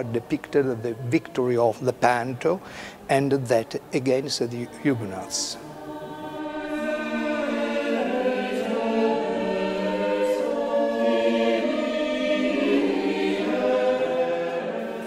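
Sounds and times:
choir singing long notes: 0:00.0 - 0:15.0.

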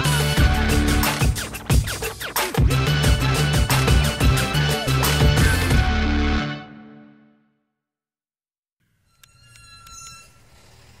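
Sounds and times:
high ringing tones: 0:08.8 - 0:11.0.

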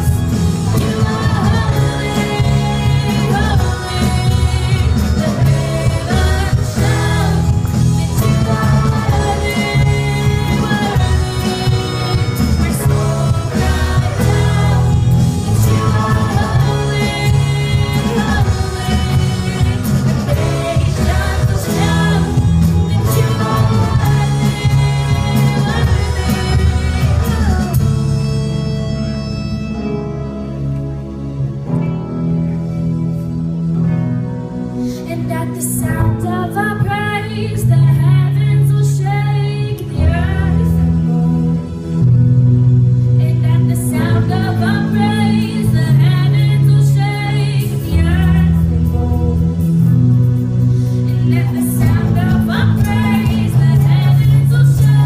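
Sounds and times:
women singing into microphones: 0:00.0 - 0:28.0, 0:34.9 - 0:41.8, 0:43.2 - 0:50.0, 0:51.0 - 0:55.0
worship band playing: 0:00.0 - 0:55.0.

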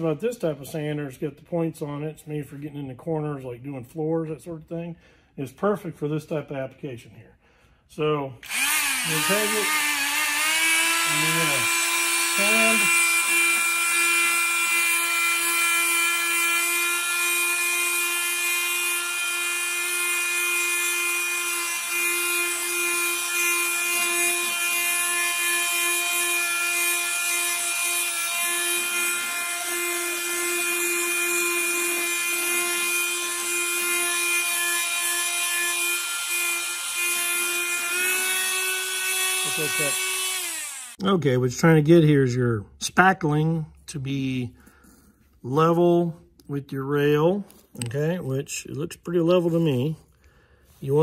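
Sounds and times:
detail sander whining: 0:08.4 - 0:41.1.

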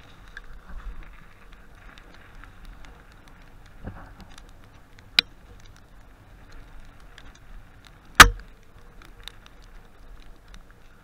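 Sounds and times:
bike rolling rumble and ticks: 0:00.0 - 0:11.0
bike sharp knock: 0:08.2 - 0:08.4.

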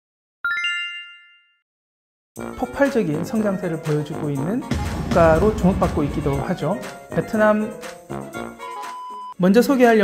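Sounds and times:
bright rising chime: 0:00.5 - 0:01.6.

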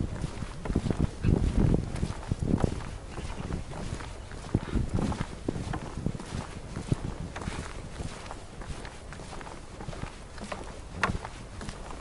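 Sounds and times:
footsteps on wooden boardwalk: 0:00.0 - 0:12.0.

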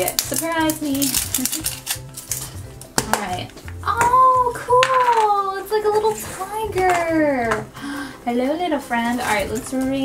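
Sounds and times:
plastic wrap crinkling: 0:00.0 - 0:03.8
background music with low beat: 0:00.0 - 0:10.0.

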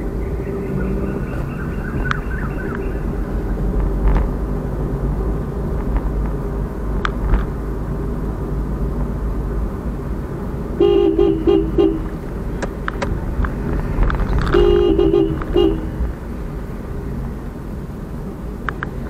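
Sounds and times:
car driving in traffic: 0:00.0 - 0:19.0
car horn toots: 0:10.8 - 0:12.2, 0:14.4 - 0:16.0.

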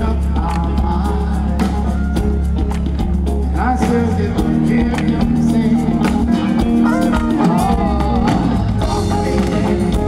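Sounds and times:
man singing lead vocal: 0:00.0 - 0:02.6, 0:03.3 - 0:10.0
soul band playing: 0:00.0 - 0:10.0.

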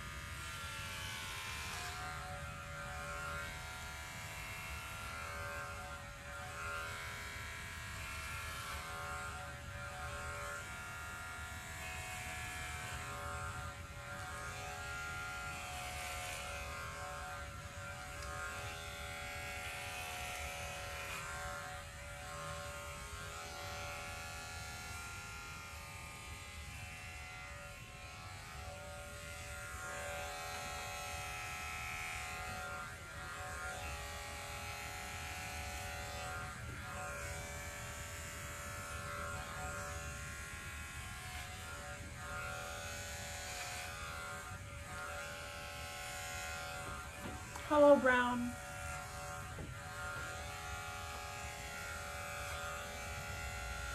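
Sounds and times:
electric hair clippers buzzing: 0:00.0 - 0:53.9.

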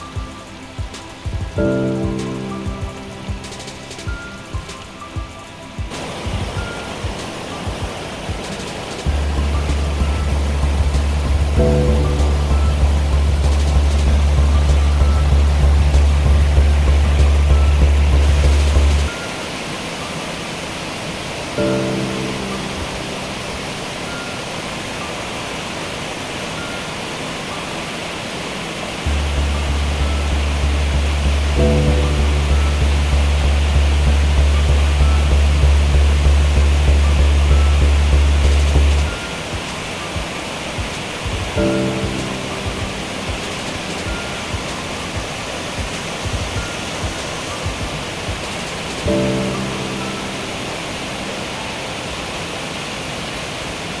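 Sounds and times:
background music: 0:00.0 - 0:52.7
waterfall rushing: 0:00.0 - 0:54.0
deep pulsing bass tone: 0:09.1 - 0:19.1, 0:29.1 - 0:39.1.

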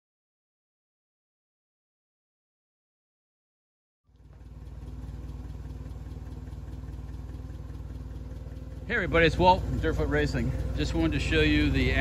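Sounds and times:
forklift engine idling: 0:04.1 - 0:12.0.

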